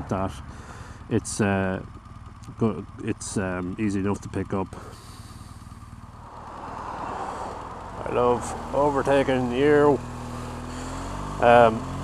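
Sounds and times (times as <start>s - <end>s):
road and wind noise: 0.0s - 1.1s, 1.9s - 3.7s, 4.8s - 12.0s
motorcycle engine running: 0.0s - 12.0s.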